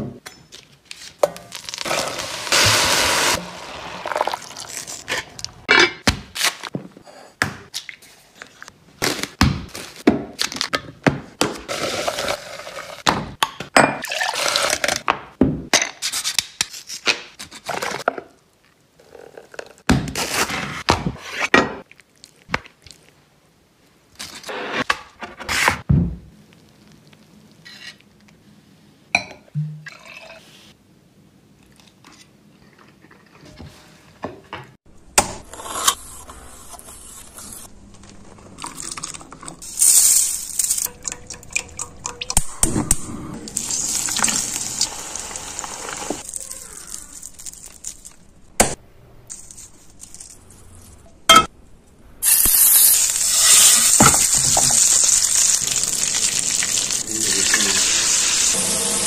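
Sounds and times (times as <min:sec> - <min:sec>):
food cooking noise: 0:01.4 - 0:05.7, 0:35.4 - 0:47.9, 0:52.2 - 0:59.0
utensils and cookware clinking: 0:38.7 - 0:42.4.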